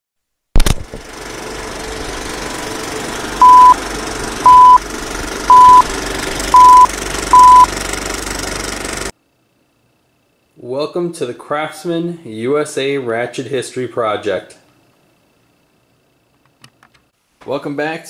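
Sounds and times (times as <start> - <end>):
film projector rattling: 0.6 - 9.1
short loud beeps: 3.4 - 3.8, 4.5 - 4.8, 5.5 - 5.9, 6.6 - 7.7.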